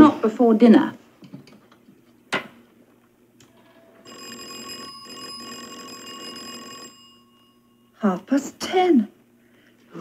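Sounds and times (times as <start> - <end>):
electric doorbell ringing: 4.0 - 8.0.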